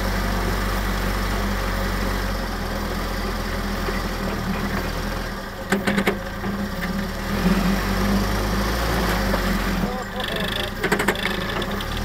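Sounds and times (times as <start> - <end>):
jeep engine running: 0.0 - 12.0.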